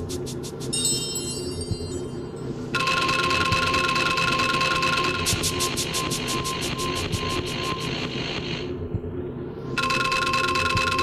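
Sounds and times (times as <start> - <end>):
fast ticking pulse: 2.8 - 8.0.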